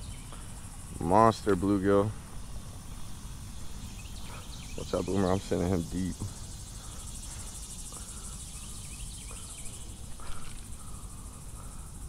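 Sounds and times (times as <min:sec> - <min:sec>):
faint bird chirps: 0:00.0 - 0:01.6, 0:02.2 - 0:12.0
insect chorus buzzing: 0:00.0 - 0:12.0.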